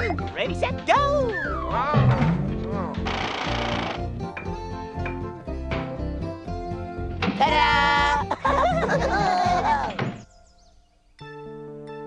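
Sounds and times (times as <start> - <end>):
music: 0.0 - 12.0
thunk: 7.2 - 7.4
cartoon characters laughing: 7.4 - 10.0.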